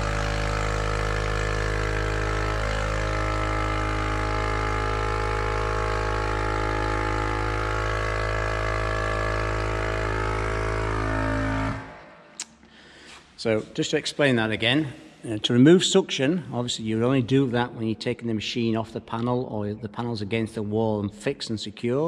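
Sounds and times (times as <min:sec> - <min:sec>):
vacuum pumps humming: 0:00.0 - 0:13.7.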